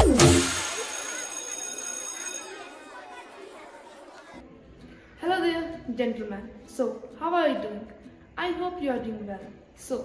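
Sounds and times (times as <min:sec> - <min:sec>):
jingle ringing hit: 0:00.0 - 0:02.5
chatter of many voices: 0:00.4 - 0:05.9.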